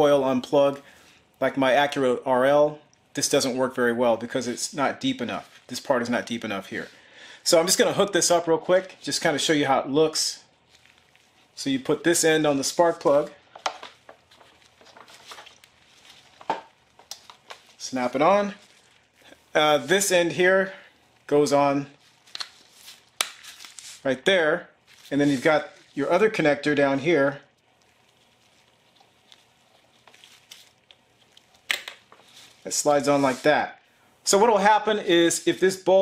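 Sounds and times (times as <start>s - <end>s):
small clicks and rubbing: 13.5s - 17.8s.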